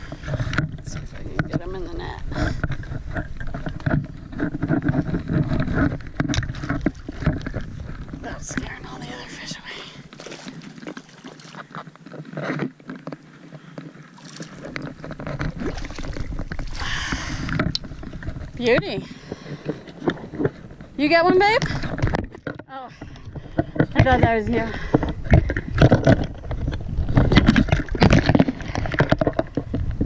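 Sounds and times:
water sloshing: 0.0 - 30.0
fishing gear clicks and knocks: 2.4 - 8.8, 10.0 - 30.0
footsteps on wet rock: 2.6 - 22.6.

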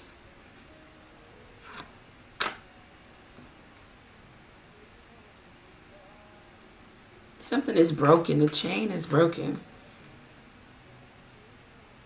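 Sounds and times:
card put down clicking: 1.6 - 2.6.

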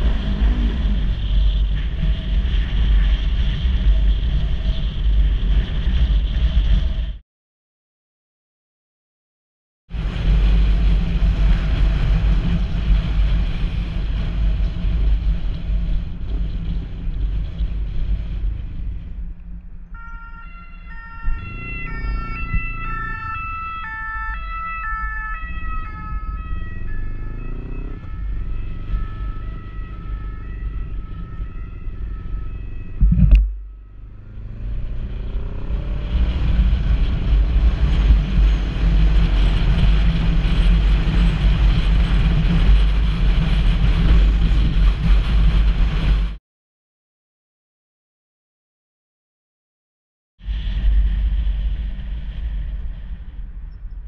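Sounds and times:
motorcycle engine: 0.0 - 5.4, 10.0 - 45.2
wind noise: 0.0 - 7.2, 9.9 - 46.4, 50.4 - 54.0
two-tone siren: 19.8 - 35.0
loud thump: 33.0 - 33.8.

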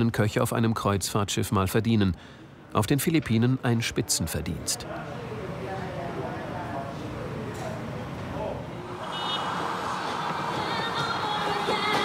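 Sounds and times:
traffic hiss: 9.0 - 11.7
music: 9.6 - 12.0.

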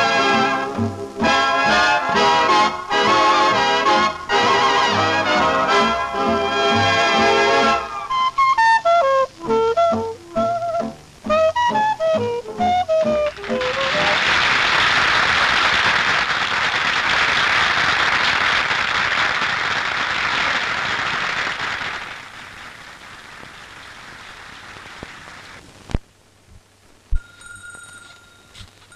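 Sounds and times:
audience applauding: 0.0 - 7.9, 11.7 - 25.6.

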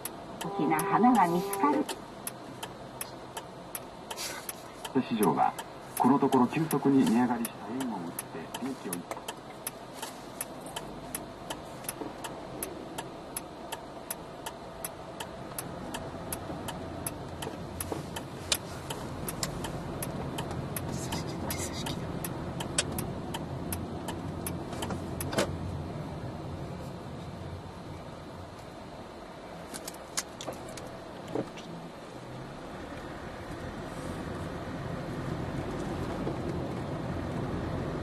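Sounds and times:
car engine: 0.0 - 38.0
road noise: 0.0 - 38.0
turn signal ticking: 0.0 - 38.0.

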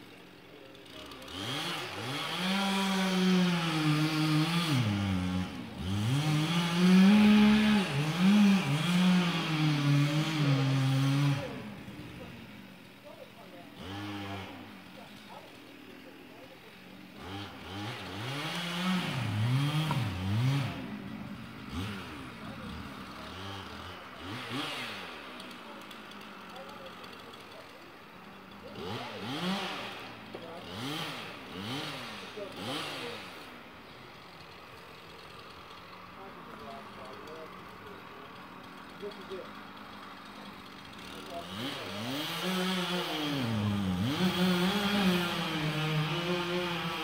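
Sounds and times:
distant chainsaw revving: 0.0 - 47.0.

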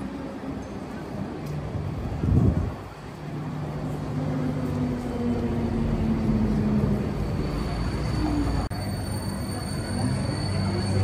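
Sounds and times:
electric tram motor hum: 0.0 - 11.0
street background noise: 0.0 - 11.0.

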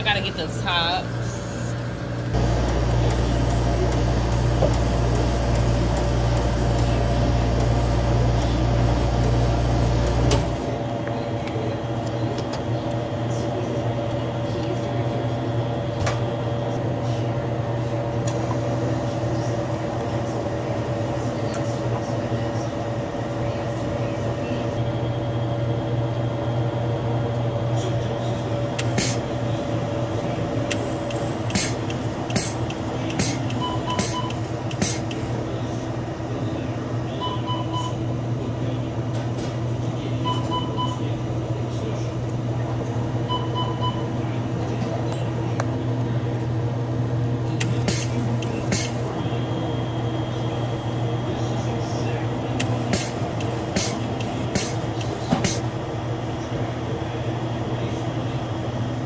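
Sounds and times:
drink machine humming: 0.0 - 59.0.

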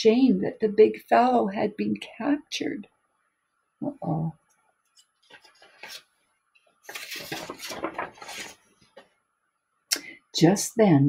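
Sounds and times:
book page rustling: 4.9 - 9.1.

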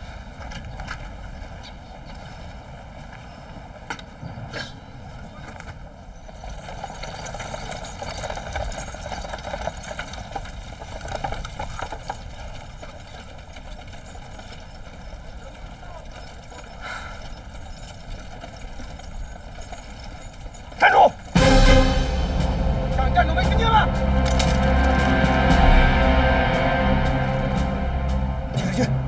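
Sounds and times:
horse hooves clip-clopping: 0.0 - 28.9.

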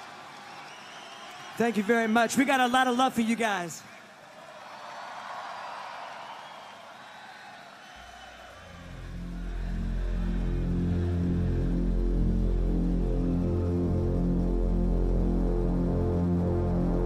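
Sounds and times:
concert crowd cheering: 0.0 - 17.0
pulsing electronic bass line: 8.6 - 17.0.

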